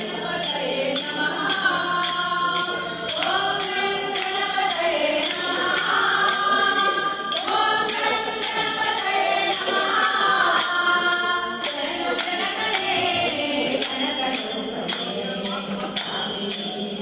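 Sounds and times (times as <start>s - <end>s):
women singing in chorus: 0.0s - 17.0s.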